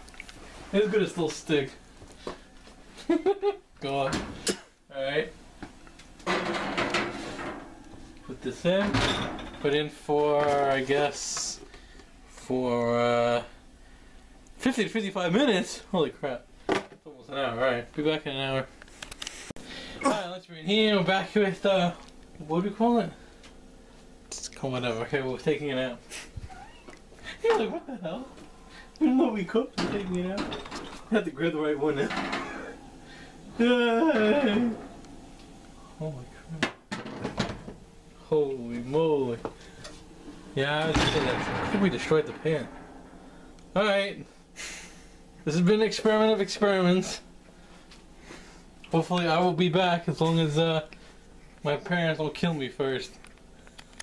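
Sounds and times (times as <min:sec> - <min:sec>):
baking pan clattering: 0:06.2 - 0:08.0, 0:31.8 - 0:32.8.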